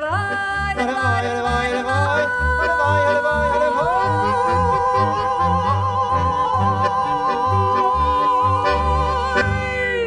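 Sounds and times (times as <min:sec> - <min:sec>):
accordion: 0:00.0 - 0:10.0
double bass: 0:00.0 - 0:10.0
man singing with vibrato: 0:00.0 - 0:10.0
clarinet: 0:03.6 - 0:09.6.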